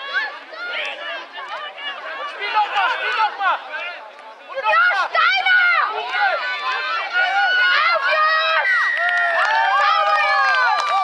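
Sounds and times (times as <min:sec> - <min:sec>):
young voices shouting: 0:04.5 - 0:11.0.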